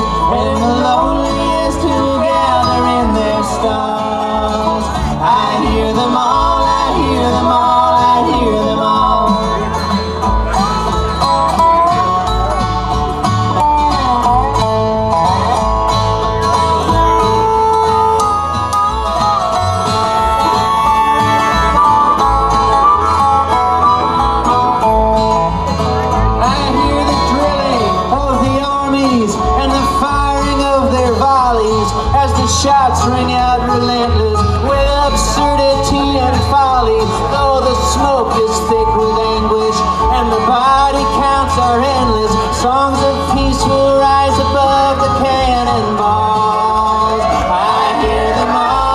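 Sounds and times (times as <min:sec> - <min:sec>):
acoustic guitar: 0:00.0 - 0:48.9
resonator guitar: 0:00.0 - 0:48.9.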